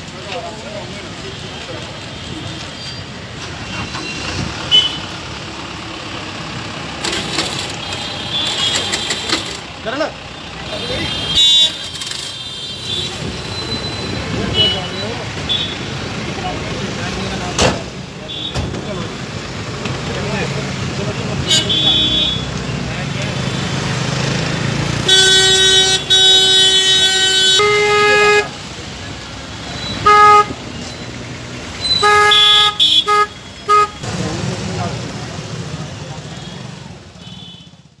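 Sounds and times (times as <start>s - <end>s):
street traffic: 0.0s - 38.0s
murmur of crowd voices: 13.1s - 24.9s
vehicle horn honking: 25.0s - 28.5s, 29.9s - 30.6s, 31.9s - 34.0s.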